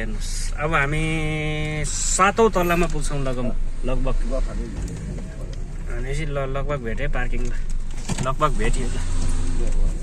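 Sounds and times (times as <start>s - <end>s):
car moving hum: 0.0s - 10.0s.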